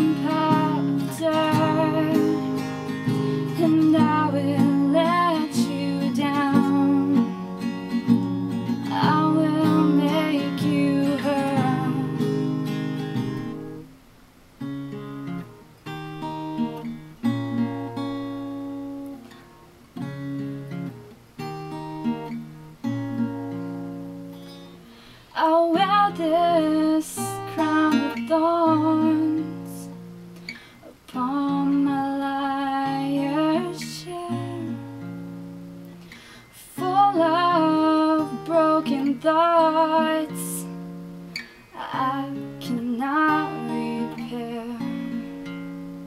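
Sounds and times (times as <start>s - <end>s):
woman singing: 0.0s - 7.6s, 8.6s - 12.6s, 25.3s - 30.1s, 30.8s - 35.3s, 36.5s - 41.0s, 41.7s - 45.6s
acoustic guitar strumming: 0.0s - 46.0s.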